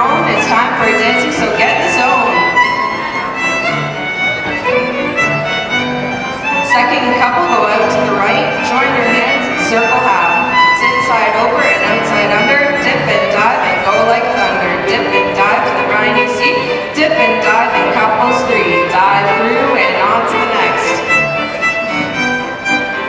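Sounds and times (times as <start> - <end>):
square dance fiddle music: 0.0 - 23.0.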